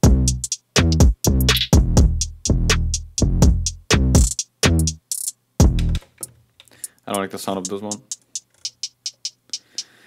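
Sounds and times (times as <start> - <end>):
hi-hat ticks: 0.0 - 6.0, 6.7 - 10.0.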